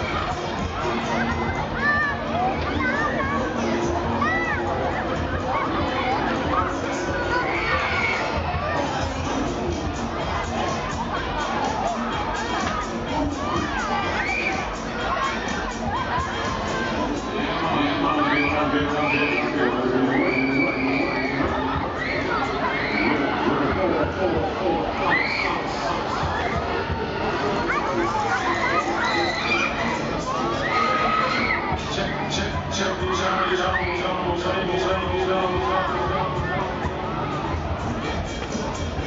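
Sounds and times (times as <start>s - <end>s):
fairground din: 0.0s - 39.0s
riders screaming and shouting: 24.9s - 32.3s.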